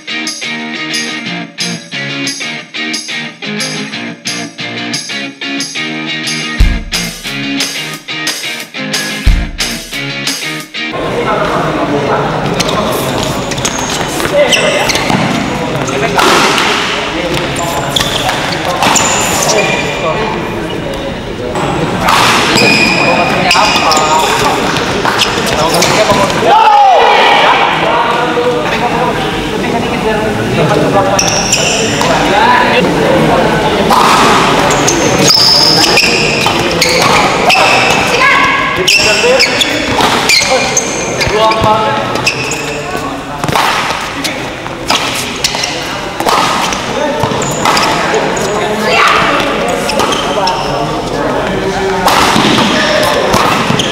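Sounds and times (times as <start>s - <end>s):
voices of players and onlookers: 10.4s - 53.9s
rackets hitting shuttlecock: 12.6s - 19.7s, 22.0s - 22.8s, 33.9s - 38.1s, 39.0s - 42.7s, 43.4s - 48.5s, 52.0s - 53.9s.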